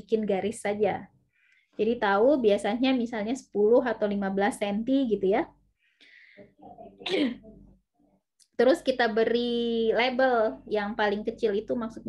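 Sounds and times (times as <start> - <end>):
person sneezing: 7.0 - 7.5.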